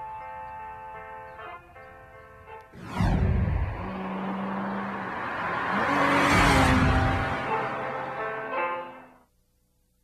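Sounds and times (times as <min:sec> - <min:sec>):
car speeding past: 0:02.7 - 0:09.0.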